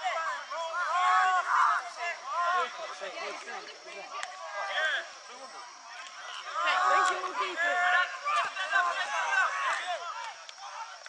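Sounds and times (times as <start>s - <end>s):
people shouting: 0.0s - 11.0s.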